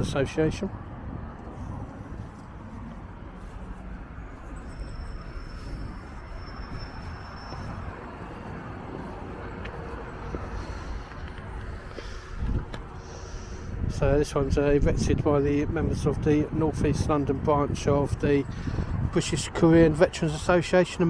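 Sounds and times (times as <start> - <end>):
distant road traffic rumble: 0.0 - 21.0.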